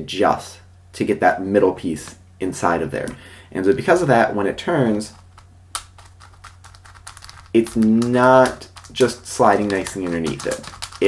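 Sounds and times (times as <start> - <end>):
puzzle cube plastic clicks: 4.9 - 11.0.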